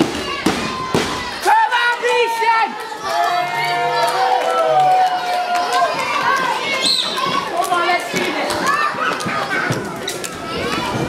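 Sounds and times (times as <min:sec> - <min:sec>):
crowd yelling: 0:00.0 - 0:11.0
children's voices: 0:02.7 - 0:11.0.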